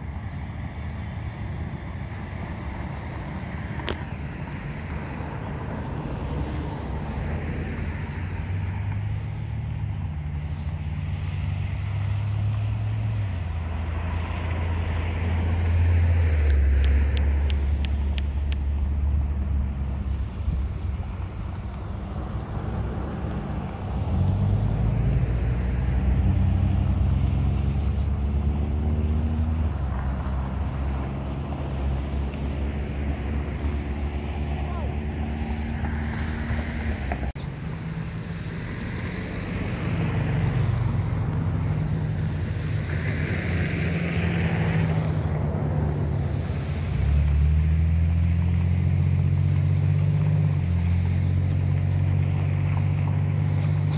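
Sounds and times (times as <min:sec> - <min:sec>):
low engine hum: 0:00.0 - 0:53.9.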